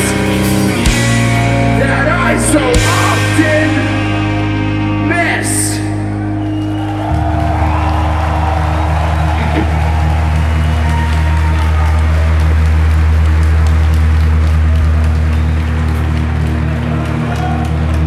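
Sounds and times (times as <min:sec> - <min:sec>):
crowd applause: 0:06.2 - 0:18.0.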